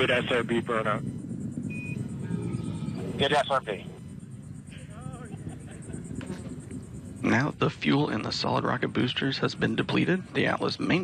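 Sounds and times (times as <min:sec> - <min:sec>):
faint low rumble: 0:00.0 - 0:11.0.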